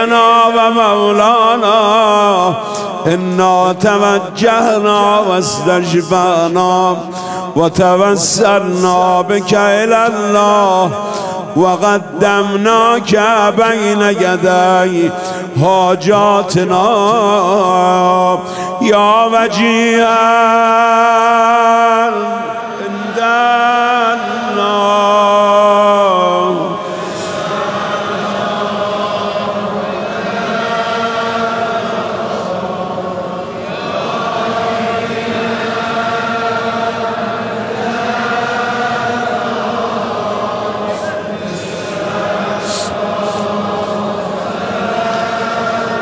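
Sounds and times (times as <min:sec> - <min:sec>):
congregation chanting: 0:00.0 - 0:46.0.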